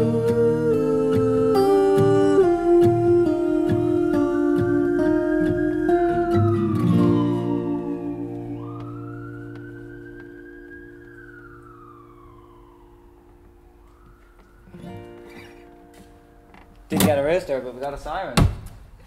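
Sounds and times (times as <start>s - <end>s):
acoustic guitar chord ringing: 0.0s - 12.5s, 14.7s - 17.0s
siren wailing: 0.0s - 16.3s.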